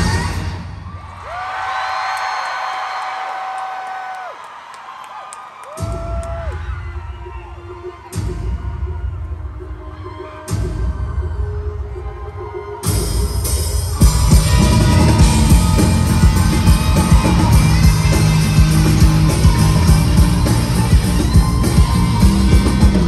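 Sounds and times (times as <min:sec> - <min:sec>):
crowd noise: 0:00.0 - 0:23.0
pop intro music over pa: 0:12.9 - 0:23.0
deep bass hits: 0:14.0 - 0:23.0.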